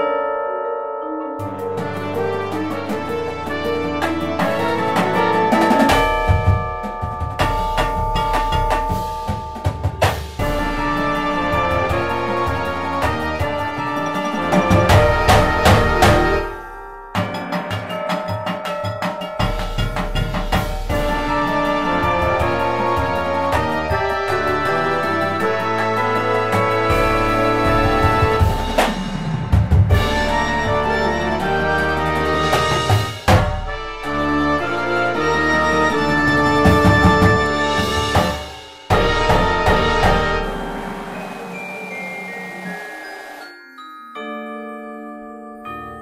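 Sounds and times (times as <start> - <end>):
wind and brass chords: 1.2 - 18.6, 19.4 - 44.3
marching band music: 1.4 - 43.9
drum strokes: 1.5 - 43.6
cymbal crash: 1.8 - 18.3, 19.4 - 31.6, 36.8 - 43.7
loud accented drum hit: 4.0 - 24.7, 26.5 - 30.8, 32.5 - 34.0, 36.6 - 41.9.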